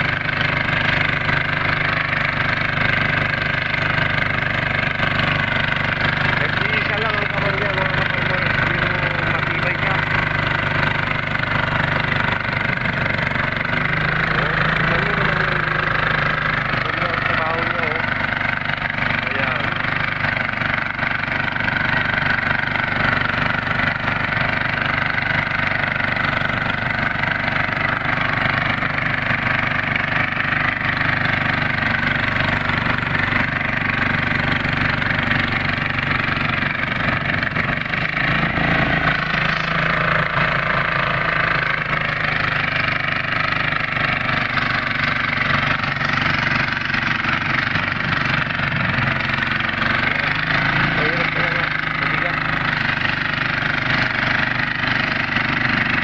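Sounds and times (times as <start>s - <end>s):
small tiller engine running: 0.0s - 56.0s.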